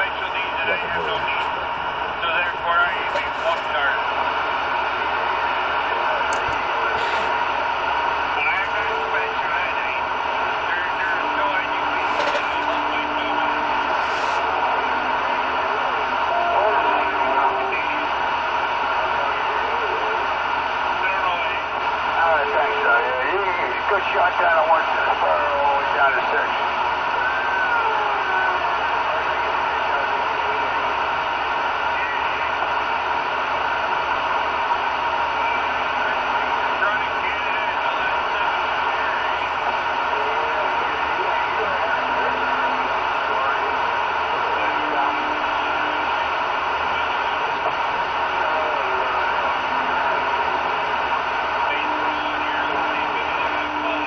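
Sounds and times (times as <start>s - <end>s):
garbled radio voices: 0.0s - 54.0s
radio static: 0.0s - 54.0s
radio whistles: 0.0s - 54.0s.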